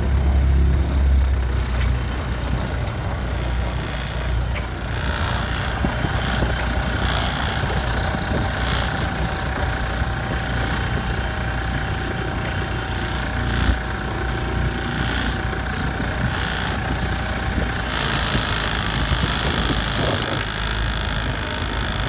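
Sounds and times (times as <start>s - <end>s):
outboard motor running: 0.0s - 22.0s.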